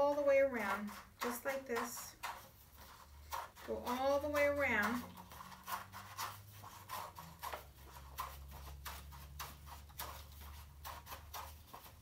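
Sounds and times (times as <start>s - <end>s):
scissors cutting paper: 0.6s - 12.0s.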